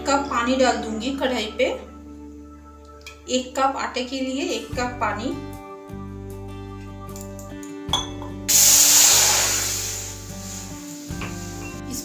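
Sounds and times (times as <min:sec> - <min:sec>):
background music: 0:00.0 - 0:12.0
water hissing in hot pan: 0:08.5 - 0:12.0.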